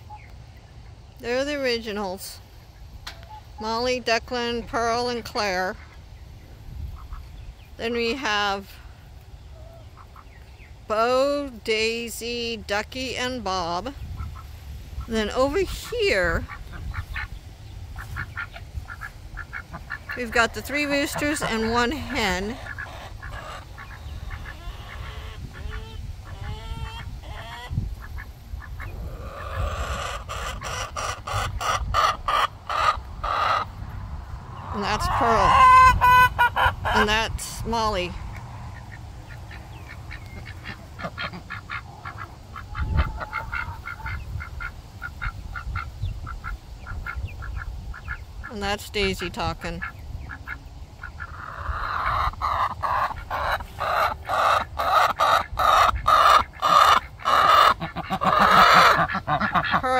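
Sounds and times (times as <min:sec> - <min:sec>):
ducks quacking softly: 0:06.8 - 0:07.4, 0:09.6 - 0:10.4, 0:14.0 - 0:33.8, 0:38.3 - 0:59.9
low rumble: 0:32.6 - 0:41.0.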